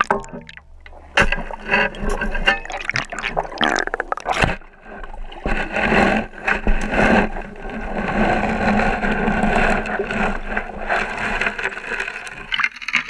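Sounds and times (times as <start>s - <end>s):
water sloshing and gurgling: 0.0s - 13.0s
shovel knocking and scraping: 0.9s - 3.5s.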